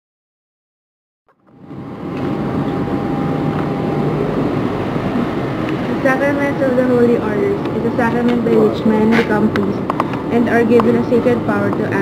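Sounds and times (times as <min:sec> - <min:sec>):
low traffic rumble: 0:01.5 - 0:12.0.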